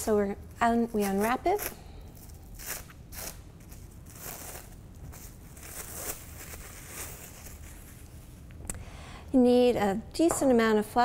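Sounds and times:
plastic wrap crinkling: 0.6s - 8.5s.

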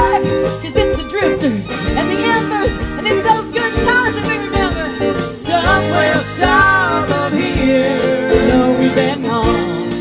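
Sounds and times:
keyboard: 0.0s - 10.0s
live band music: 0.0s - 10.0s
person singing: 4.4s - 10.0s.

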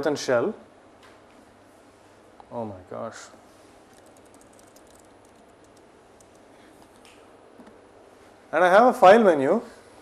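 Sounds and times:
computer keyboard keystrokes: 3.9s - 7.1s.

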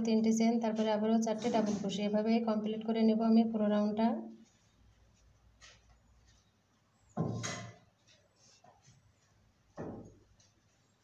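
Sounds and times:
woman speaking: 0.0s - 4.4s
faint yarn rustle: 8.0s - 9.4s.

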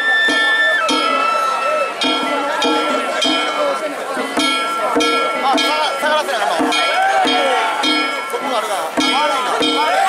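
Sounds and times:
drum beating: 0.0s - 10.0s.

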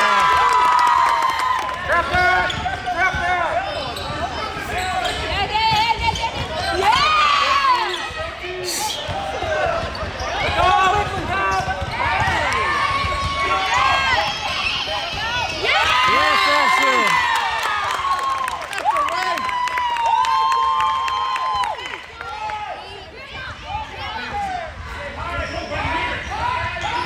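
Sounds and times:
sneakers squeaking: 2.0s - 16.8s, 24.8s - 27.0s.

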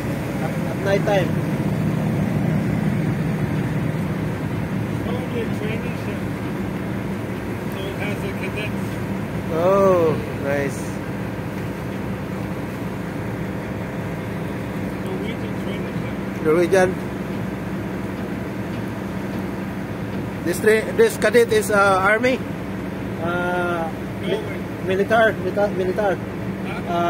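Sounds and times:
low harbour hum: 0.0s - 27.0s.

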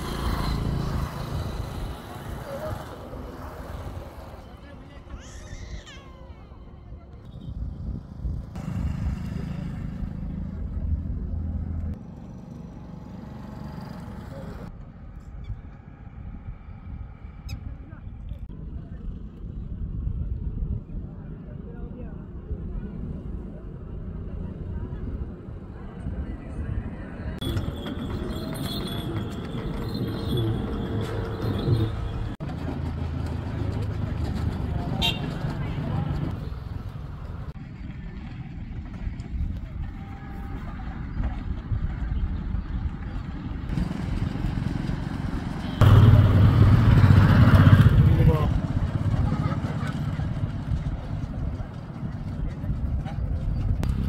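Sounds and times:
vehicle engine rumbling: 6.9s - 54.0s.

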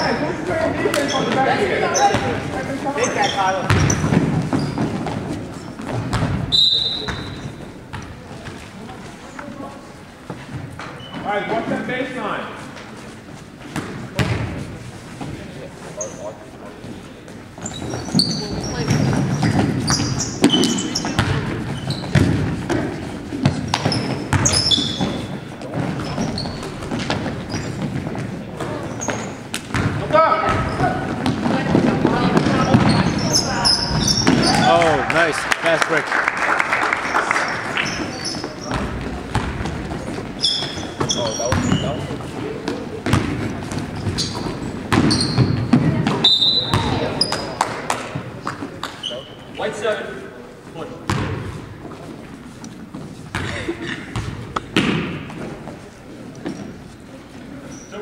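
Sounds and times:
sneaker squeaks: 0.0s - 11.6s, 12.6s - 34.8s, 37.4s - 49.8s, 51.0s - 58.0s
basketball bouncing on wooden floor: 3.7s - 5.2s, 5.8s - 8.6s, 17.7s - 34.6s, 38.6s - 42.0s, 42.7s - 47.4s, 51.1s - 51.5s, 53.3s - 55.5s.

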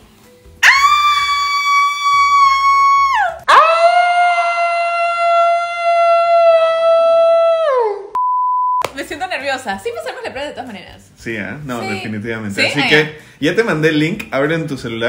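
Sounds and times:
woman screaming: 0.6s - 8.1s.

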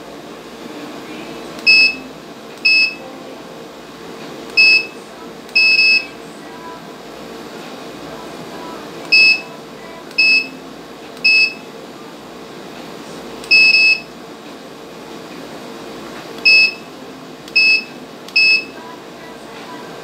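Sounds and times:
high electronic beeps: 5.6s - 6.1s, 9.1s - 9.5s, 11.2s - 11.6s, 13.5s - 14.1s, 16.5s - 16.9s, 17.6s - 18.7s.

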